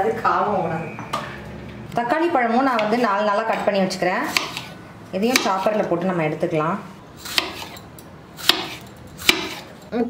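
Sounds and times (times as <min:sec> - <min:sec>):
knife cutting tomatoes: 0:02.8 - 0:05.8, 0:07.2 - 0:07.8, 0:08.4 - 0:09.7.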